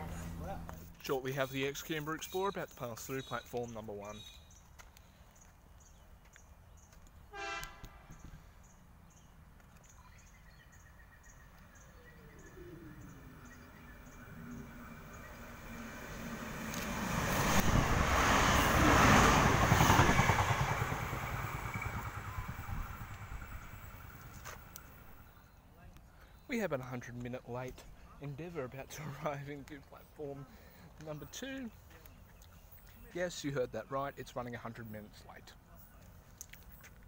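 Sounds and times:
train horn toot: 0:07.3 - 0:08.1
train passing through station: 0:12.2 - 0:25.3.

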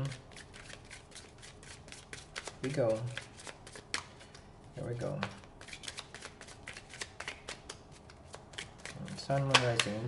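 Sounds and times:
cards being shuffled: 0:00.3 - 0:04.4, 0:05.0 - 0:10.0.

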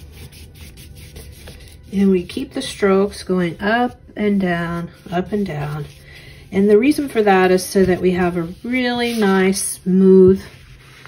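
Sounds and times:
paintbrush brushing: 0:00.0 - 0:02.5, 0:04.7 - 0:09.8, 0:10.4 - 0:11.0.

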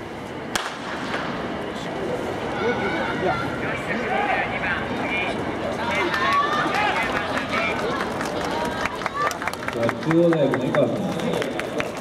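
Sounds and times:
starting gun shot: 0:00.5 - 0:01.3.

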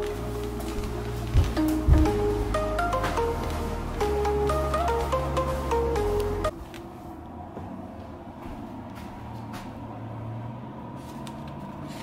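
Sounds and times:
background music: 0:00.0 - 0:06.5
low household hum: 0:00.0 - 0:12.0.

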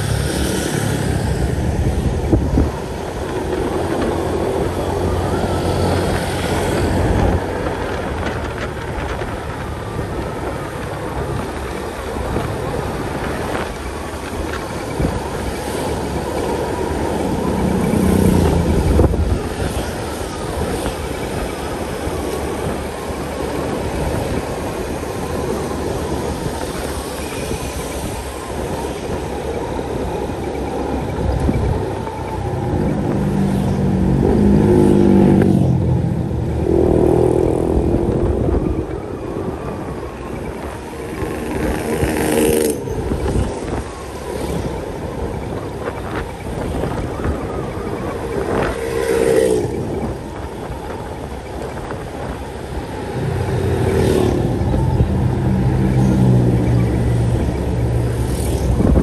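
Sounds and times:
passing vehicles: 0:00.0 - 0:59.0
wind rushing over microphone: 0:00.0 - 0:59.0.

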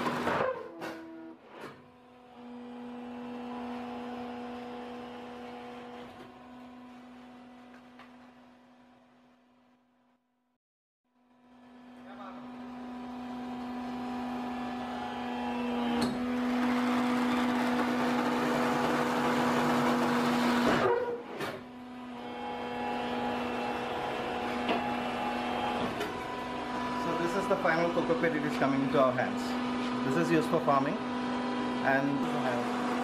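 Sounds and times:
pressing machine humming and hissing: 0:12.0 - 0:33.0.

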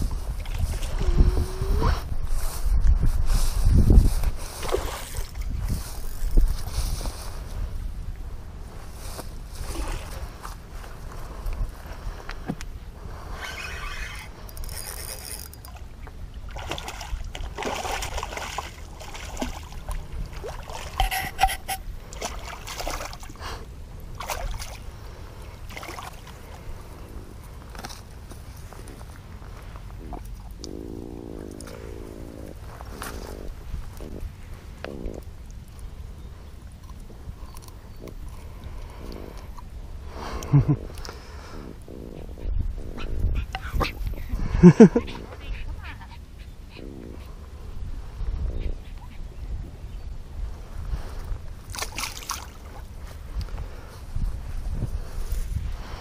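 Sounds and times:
wind rumbling on microphone: 0:00.0 - 0:56.0
fish splashing in water: 0:16.5 - 0:23.4
fish croaking: 0:19.0 - 0:22.5.

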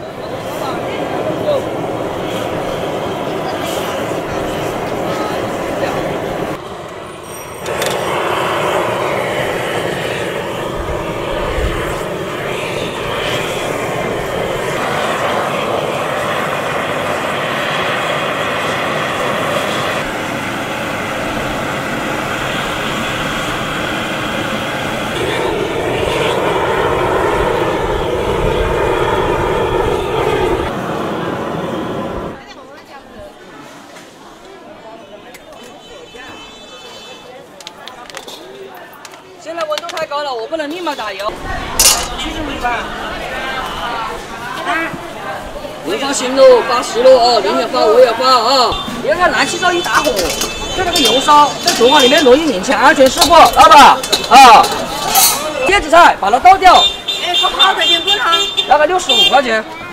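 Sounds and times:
gas torch rushing: 0:00.0 - 0:32.4, 0:41.3 - 0:57.0.

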